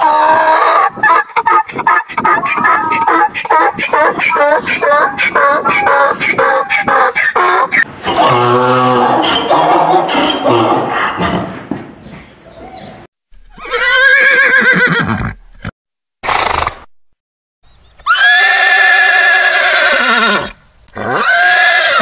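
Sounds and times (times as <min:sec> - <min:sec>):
horses whinnying: 0:00.0 - 0:11.6, 0:13.5 - 0:16.8, 0:18.0 - 0:22.0.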